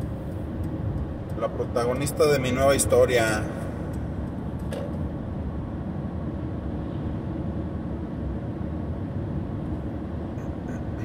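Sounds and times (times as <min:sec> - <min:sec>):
van cabin road rumble: 0:00.0 - 0:11.0.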